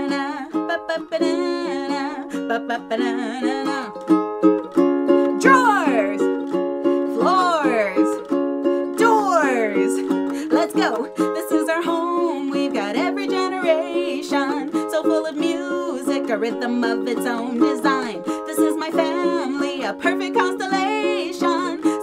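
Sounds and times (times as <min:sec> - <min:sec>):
woman singing: 0:00.0 - 0:04.1, 0:05.3 - 0:06.4, 0:07.1 - 0:08.2, 0:08.9 - 0:22.0
ukulele strumming: 0:00.0 - 0:22.0.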